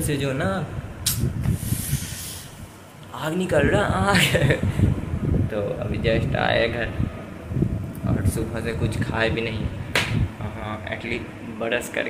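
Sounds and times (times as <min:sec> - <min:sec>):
person blowing out breath: 0:01.1 - 0:02.7.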